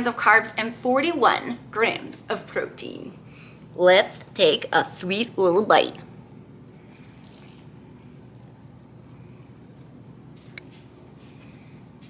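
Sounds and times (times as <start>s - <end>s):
low room hum: 0.0s - 12.0s
person chewing: 6.7s - 8.2s.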